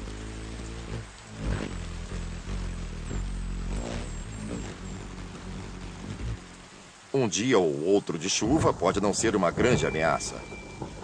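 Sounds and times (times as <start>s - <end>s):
rain hissing: 0.0s - 11.0s.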